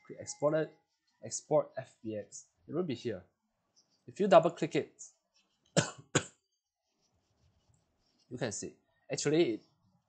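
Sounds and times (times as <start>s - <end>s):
man coughing: 5.8s - 6.4s.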